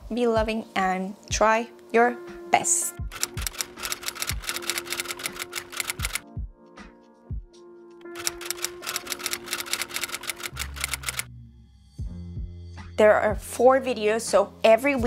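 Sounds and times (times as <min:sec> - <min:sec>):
soft background music: 0:00.0 - 0:15.0
typewriter key clicks: 0:03.1 - 0:06.2, 0:08.2 - 0:11.2.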